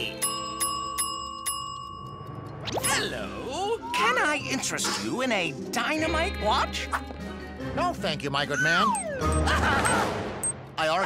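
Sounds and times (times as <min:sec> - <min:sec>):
counter service bell ringing: 0:00.1 - 0:02.5.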